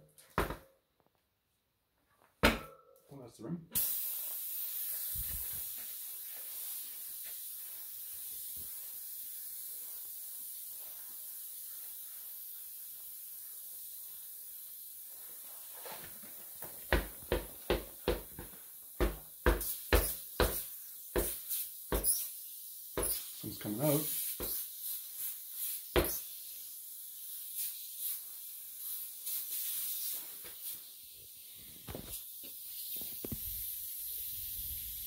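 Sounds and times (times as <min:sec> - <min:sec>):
air hissing from tyre: 0:03.8 - 0:35.0
wheel thumping on wooden floor: 0:16.6 - 0:20.6.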